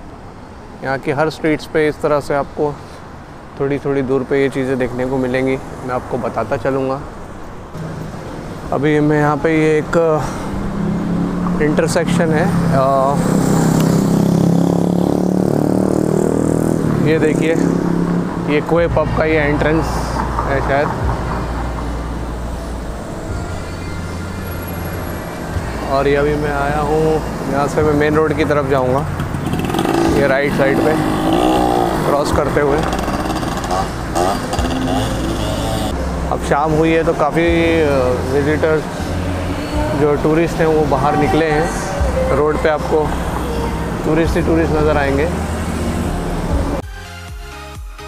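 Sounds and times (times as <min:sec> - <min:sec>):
traffic engine rumble: 0:00.0 - 0:46.8.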